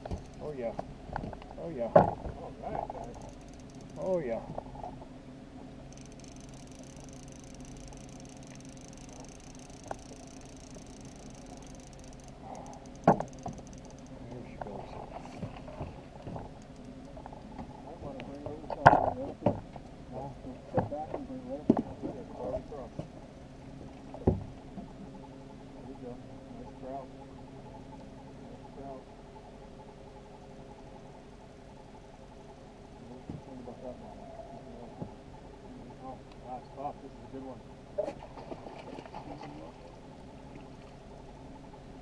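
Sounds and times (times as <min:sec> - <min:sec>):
outboard motor running: 0:00.0 - 0:42.0.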